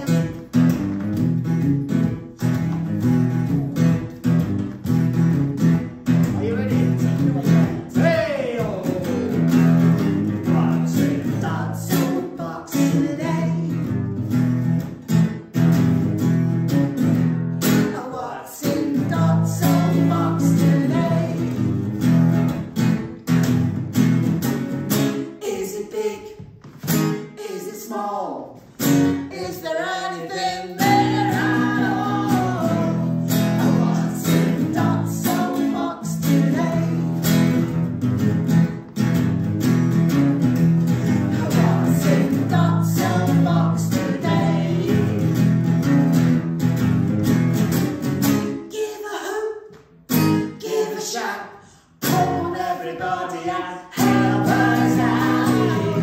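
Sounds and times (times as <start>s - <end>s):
acoustic guitar strumming: 0.0s - 25.4s, 26.6s - 27.5s, 28.5s - 48.7s, 50.1s - 51.1s, 51.7s - 56.0s
person singing: 6.4s - 9.6s, 10.4s - 13.9s, 17.9s - 21.7s, 25.3s - 26.5s, 27.2s - 28.6s, 29.3s - 37.6s, 41.0s - 45.4s, 48.6s - 49.7s, 50.4s - 56.0s.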